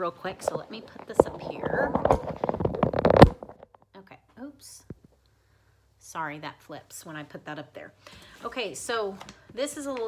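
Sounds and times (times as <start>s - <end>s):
knocks and rustles of handling: 0.1s - 4.0s.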